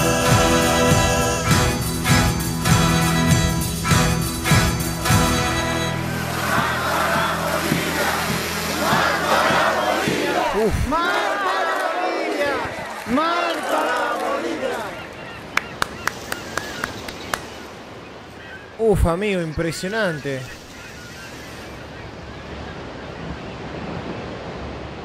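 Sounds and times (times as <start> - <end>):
crowd shouting and crying out: 5.5 - 15.2.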